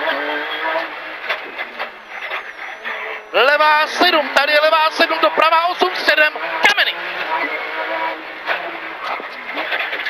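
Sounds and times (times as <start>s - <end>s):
car engine running: 0.0s - 10.0s
road and tyre noise: 0.0s - 10.0s.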